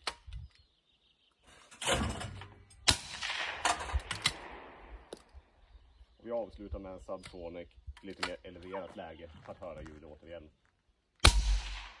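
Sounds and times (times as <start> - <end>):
shotgun report with echo: 2.8 - 5.1, 11.2 - 12.0.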